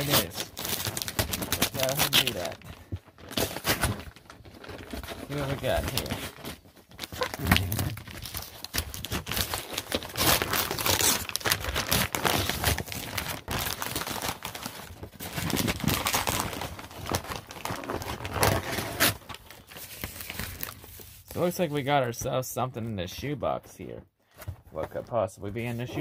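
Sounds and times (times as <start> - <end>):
paper tearing and crumpling: 0.0 - 21.6.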